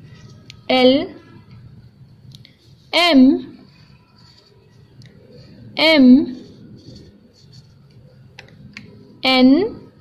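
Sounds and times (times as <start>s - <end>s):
marker scratching on paper: 2.6s - 8.0s.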